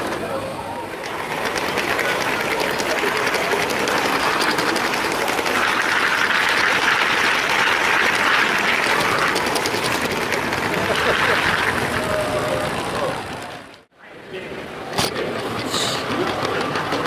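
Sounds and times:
hubbub of voices: 0.0 - 5.8, 7.5 - 17.0
toy train rattling on plastic track: 1.0 - 13.8, 15.2 - 17.0.

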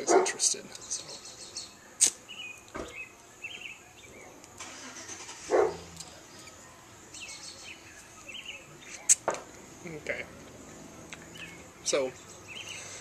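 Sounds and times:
outdoor background noise: 0.0 - 13.0
cigar being lit and puffed: 2.0 - 2.2.

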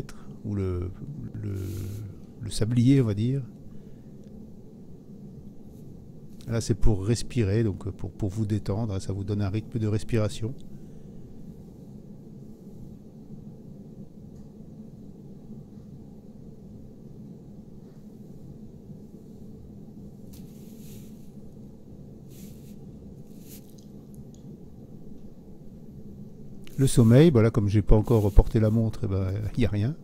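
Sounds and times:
soft rustles: 17.8 - 21.6, 22.2 - 24.3, 26.6 - 27.3, 27.9 - 29.1.

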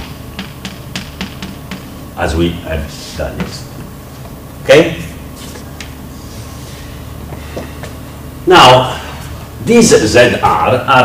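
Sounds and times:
chalk tapping on blackboard: 0.0 - 2.0.

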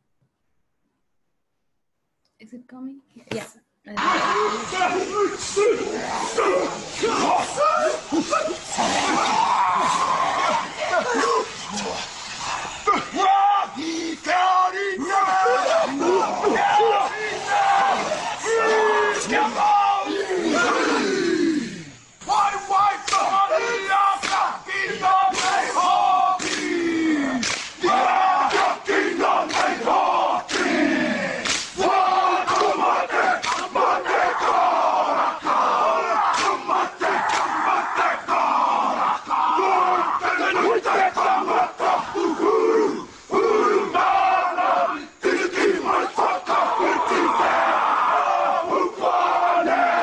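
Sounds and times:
men chanting and shouting in unison: 3.9 - 50.0.

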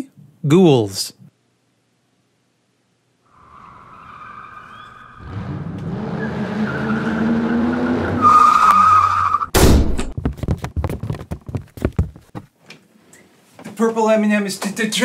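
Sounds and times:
long squealing screech: 3.3 - 9.5
low grinding: 3.4 - 8.7.

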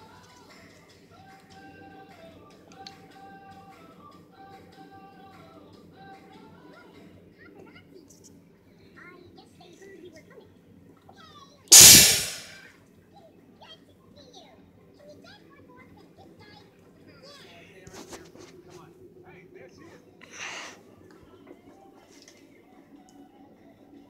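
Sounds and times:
pop song through tv speaker: 0.0 - 7.3
loud sudden bang: 11.7 - 12.6.

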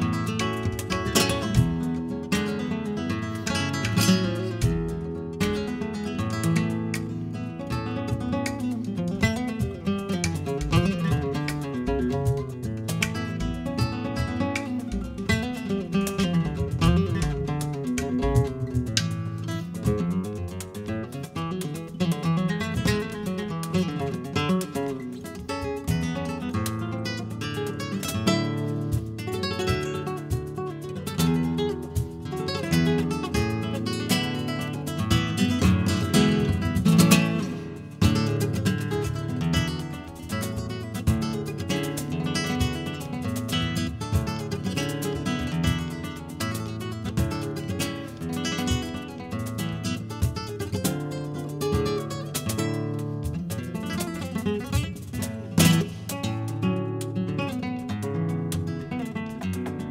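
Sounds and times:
cajon keeping time: 0.0 - 59.9
flamenco guitar playing: 0.0 - 59.9.

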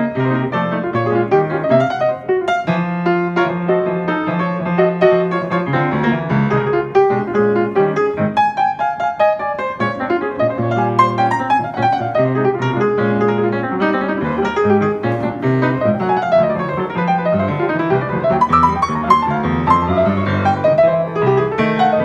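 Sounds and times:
solo grand piano: 0.0 - 22.0.

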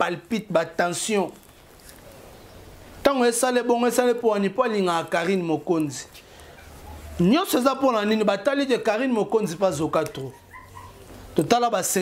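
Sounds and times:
man talking animatedly: 0.0 - 1.4, 3.0 - 6.1, 7.2 - 10.4, 11.4 - 12.0.

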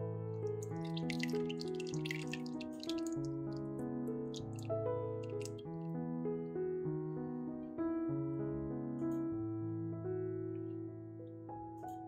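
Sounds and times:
keyboard music with held notes: 0.0 - 12.0
egg mixture pouring and splashing: 0.5 - 3.4, 4.4 - 5.6.

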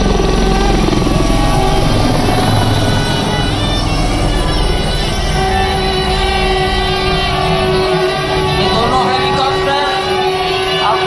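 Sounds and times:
helicopter rotor chopping: 0.0 - 11.0.

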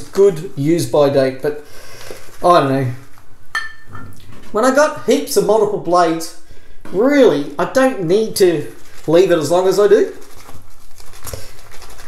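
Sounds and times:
shaving brush lathering soap: 8.3 - 12.0.

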